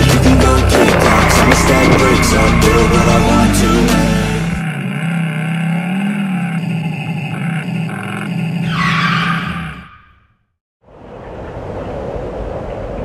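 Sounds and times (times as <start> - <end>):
electric motorcycle motor hum: 0.6 - 8.7.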